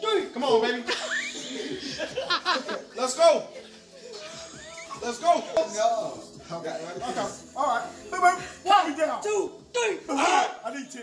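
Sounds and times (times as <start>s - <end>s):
excited voices laughing: 0.8s - 5.9s.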